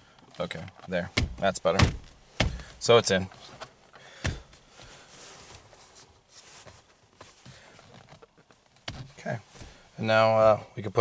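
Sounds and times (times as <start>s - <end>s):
faint handling noise: 0.1s - 11.0s
hand thumping steering wheel: 0.9s - 2.9s, 4.2s - 4.6s.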